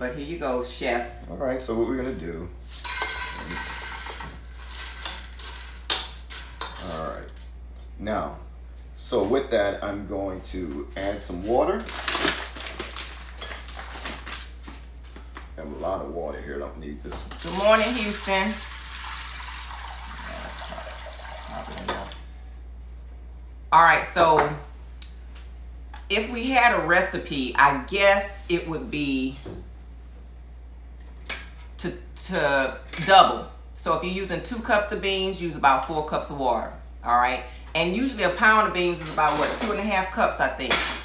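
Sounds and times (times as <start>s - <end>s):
dishes and utensils clinking: 2.7s - 7.0s
faucet water filling container: 17.4s - 22.3s.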